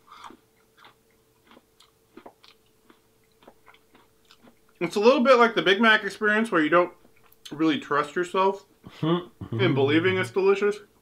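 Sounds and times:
person chewing: 0.0 - 4.8, 7.0 - 7.5
faint steady hum: 0.0 - 11.0.

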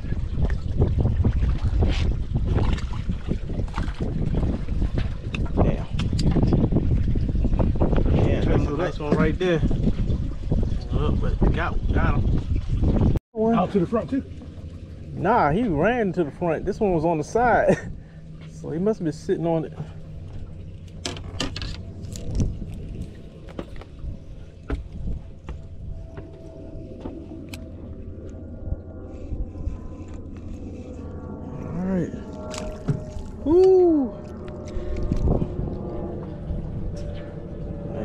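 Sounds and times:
steady low hum: 0.0 - 38.0
man exclaiming: 33.4 - 34.2.

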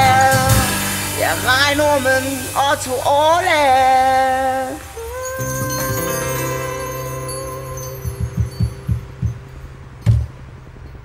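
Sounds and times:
acoustic guitar chord ringing: 0.0 - 10.3
hand drum thumps: 8.0 - 10.4.

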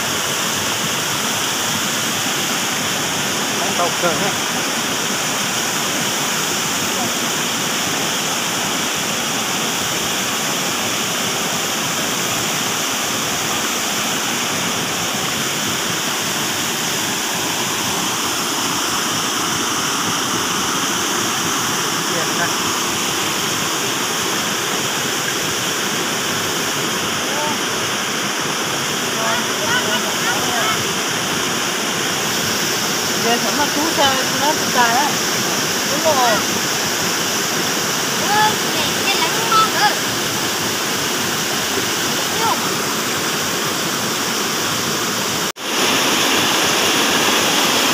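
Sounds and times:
stream rushing over rocks: 0.0 - 47.9.

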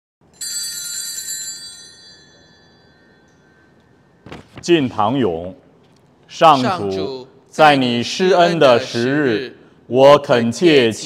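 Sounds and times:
small high-pitched bell ringing: 0.3 - 3.8.

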